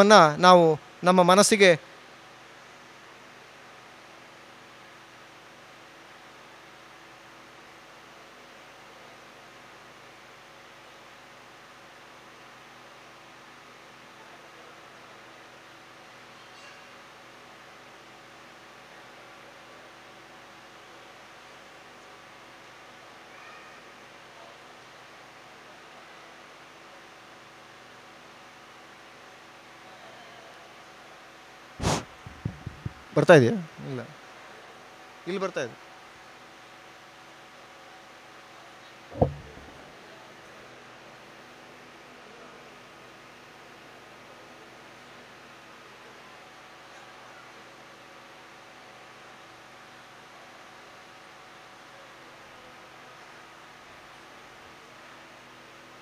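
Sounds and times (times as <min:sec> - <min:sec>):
microphone hiss and hum: 0:00.0 - 0:01.9, 0:31.8 - 0:34.2, 0:38.8 - 0:40.8.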